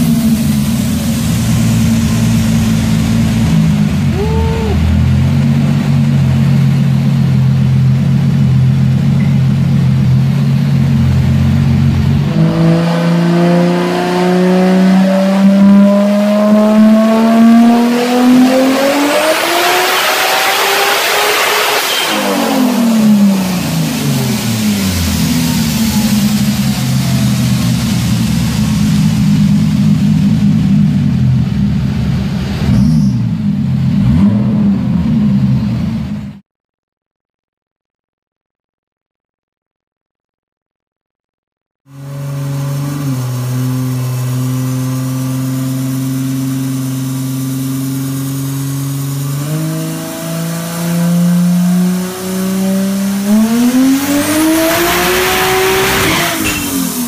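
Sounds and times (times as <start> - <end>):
loud rush of noise: 0.0 - 6.0, 20.4 - 32.8
turbocharged car engine revving: 0.0 - 36.4, 41.9 - 57.0.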